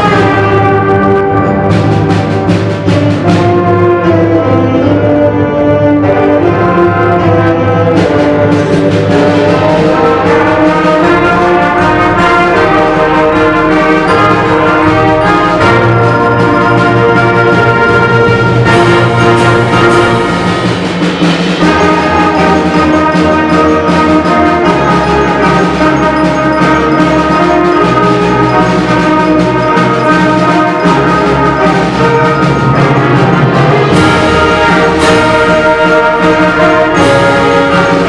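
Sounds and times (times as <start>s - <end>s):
concert band playing chords: 0.0s - 38.0s
percussion strikes: 0.0s - 38.0s.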